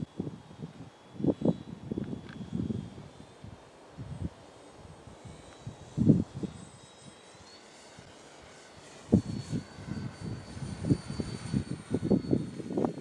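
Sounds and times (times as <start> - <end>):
wind buffeting microphone: 0.0 - 6.8, 8.8 - 13.0
electric motor high whine: 0.0 - 13.0.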